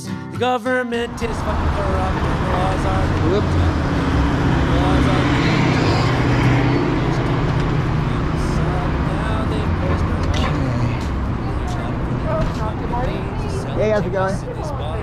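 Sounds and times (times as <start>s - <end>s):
street traffic rumble: 0.9s - 15.0s
people talking indistinctly: 1.1s - 15.0s.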